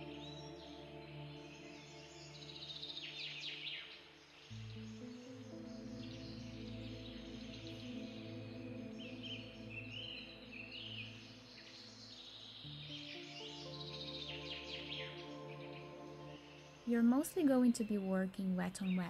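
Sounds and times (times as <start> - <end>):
bird chirps and trills: 0.0 - 19.0
soft ambient music chords: 0.0 - 19.0.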